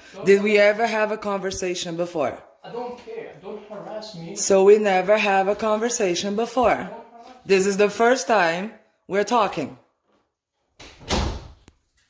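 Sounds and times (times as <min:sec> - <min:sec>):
door closing thud: 0:10.8 - 0:11.7.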